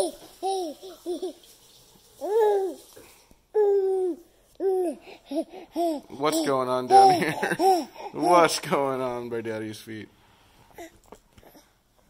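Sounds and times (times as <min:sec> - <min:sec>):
baby vocalizing: 0:03.5 - 0:08.6.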